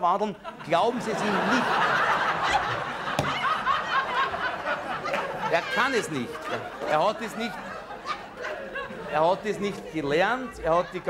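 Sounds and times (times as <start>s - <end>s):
audience laughing: 0.3s - 11.0s.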